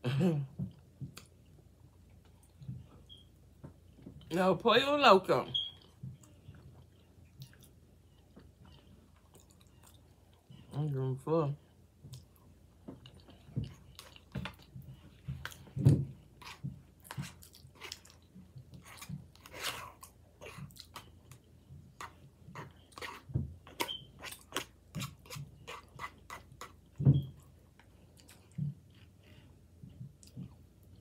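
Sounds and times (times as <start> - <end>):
close chewing: 5.6 - 10.8, 12.0 - 31.0.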